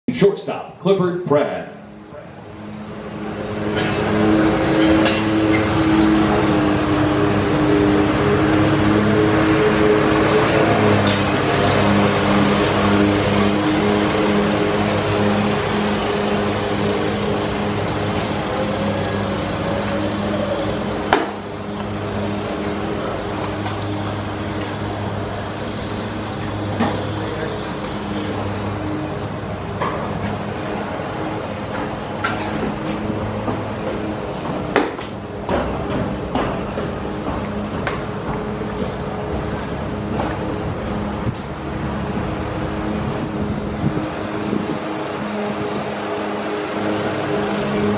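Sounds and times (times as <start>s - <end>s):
steady rushing noise: 1.5s - 47.9s.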